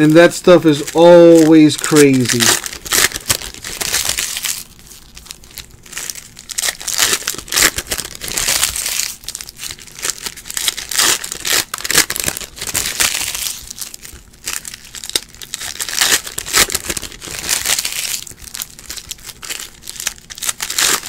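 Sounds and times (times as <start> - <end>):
foil wrappers crinkling: 0.0 - 21.0
cards shuffling: 0.4 - 4.6.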